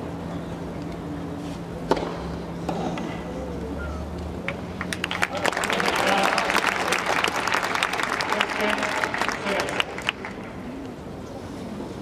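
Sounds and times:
stadium hum and murmur: 0.0 - 12.0.

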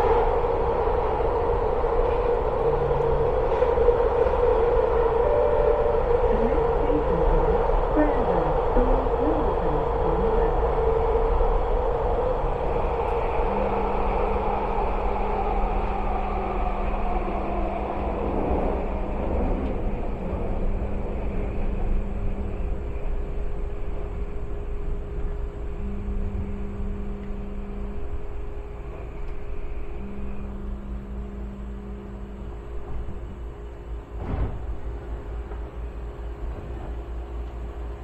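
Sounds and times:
train wheels rumbling on rail: 0.0 - 30.4, 31.6 - 38.0
higher hum: 2.2 - 33.7
low steady hum: 19.6 - 38.0.

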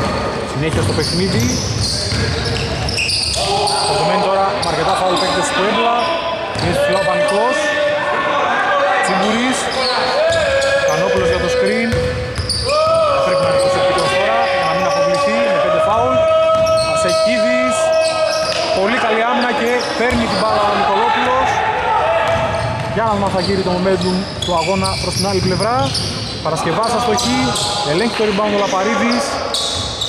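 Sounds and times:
sneaker squeaks: 0.0 - 7.6, 9.0 - 21.2, 22.2 - 30.0
basketball bouncing on hardwood: 11.9 - 12.5.

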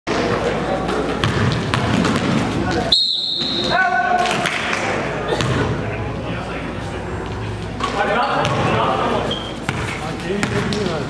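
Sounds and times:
voices in echoing hall: 0.1 - 11.0
basketballs bouncing: 1.0 - 3.7, 5.3 - 5.8, 8.4 - 8.9, 9.6 - 11.0
high steady whistle tone: 2.9 - 3.7.

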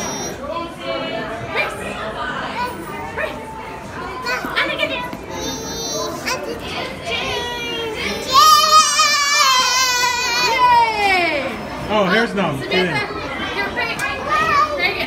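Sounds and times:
small children babbling: 5.3 - 6.6.

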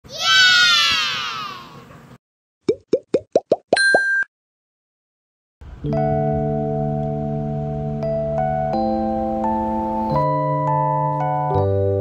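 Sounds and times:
cartoon pops rising in pitch: 2.7 - 4.1.

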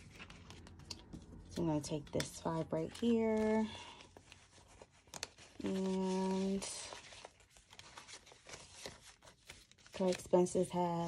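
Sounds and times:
paper banknotes shuffled by hand: 0.0 - 11.0.

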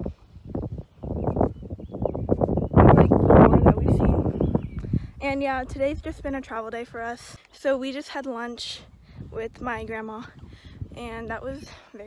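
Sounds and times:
wind buffeting a microphone: 0.0 - 7.5, 8.4 - 12.0.

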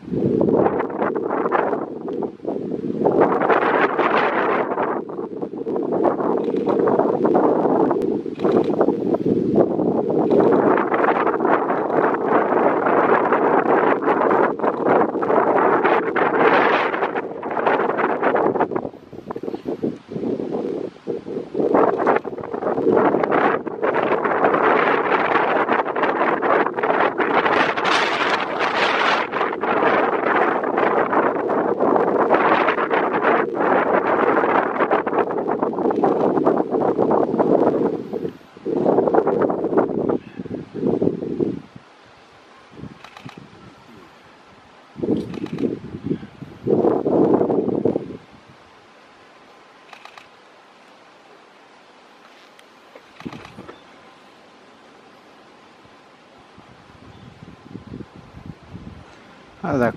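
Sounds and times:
wind buffeting microphone: 0.0 - 48.8, 53.0 - 53.8, 55.9 - 59.9.

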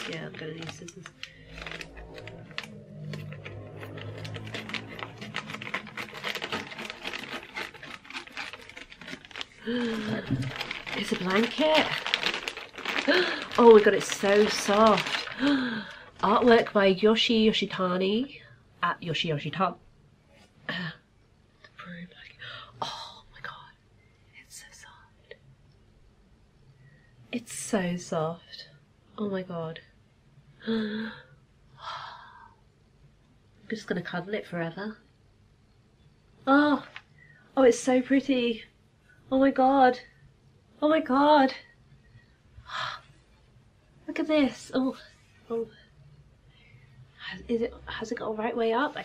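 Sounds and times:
plastic crinkling: 0.0 - 17.0
scissors snipping plastic bag: 3.4 - 16.6.

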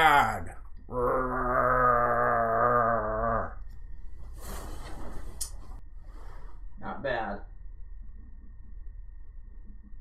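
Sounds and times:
man groaning: 0.0 - 3.6.

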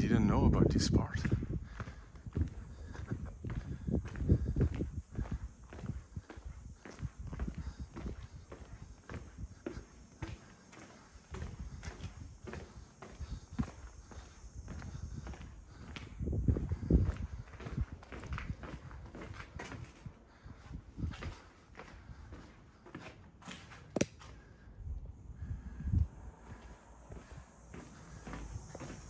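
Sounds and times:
footsteps on stone paving: 1.1 - 24.6, 26.4 - 29.0.

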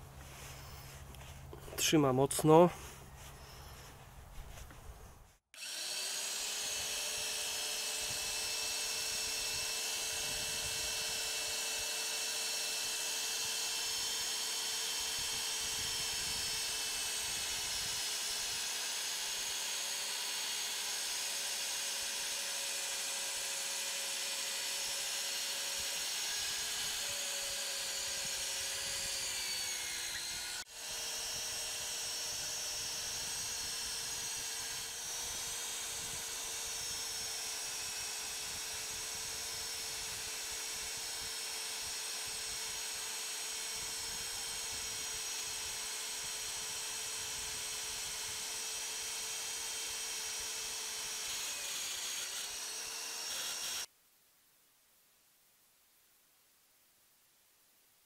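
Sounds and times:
drill boring through metal: 5.6 - 53.9.

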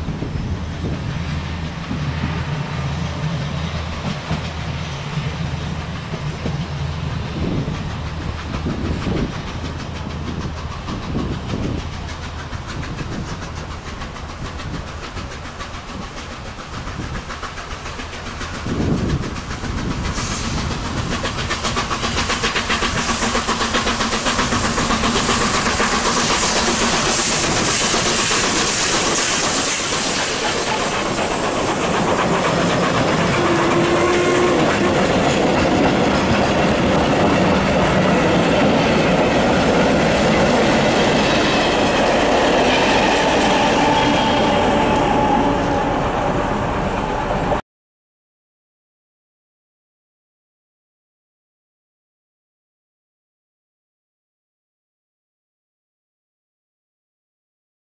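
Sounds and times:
steam and exhaust hiss: 0.0 - 47.6
steam locomotive pulling train: 0.0 - 47.6
wheels clacking over rail joints: 0.8 - 46.0.

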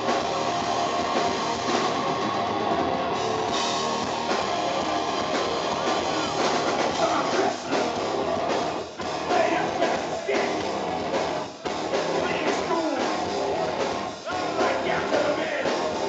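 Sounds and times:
drum kit: 0.0 - 16.0
electric guitar: 0.0 - 16.0.

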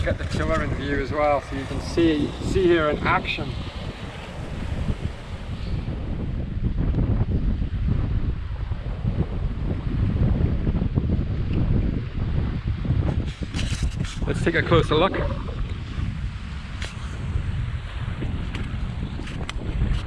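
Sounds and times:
water rushing along hull: 0.0 - 6.3, 14.1 - 16.8
wind buffeting microphone: 0.0 - 20.0.

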